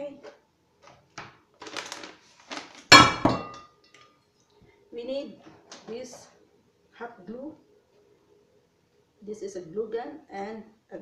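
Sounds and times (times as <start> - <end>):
paper rustling: 1.6 - 2.9.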